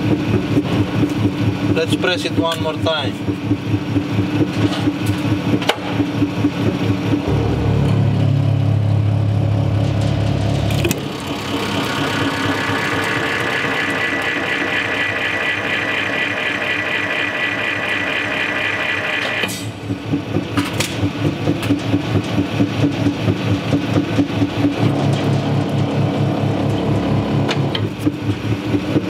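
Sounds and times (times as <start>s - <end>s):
hydraulic pump low hum: 0.0s - 29.0s
hydraulic press whine: 3.9s - 29.0s.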